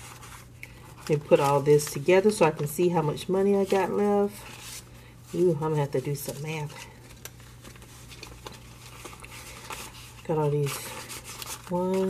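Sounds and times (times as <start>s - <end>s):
banknotes rustling: 0.0s - 12.0s
soft paper flicks: 6.0s - 12.0s.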